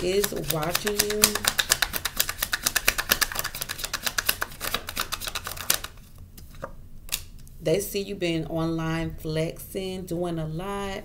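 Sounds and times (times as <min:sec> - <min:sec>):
cards being shuffled: 0:00.0 - 0:07.4.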